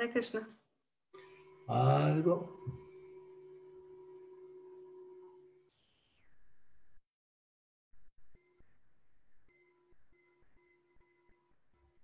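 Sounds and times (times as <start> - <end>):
held tones: 1.2 - 6.8.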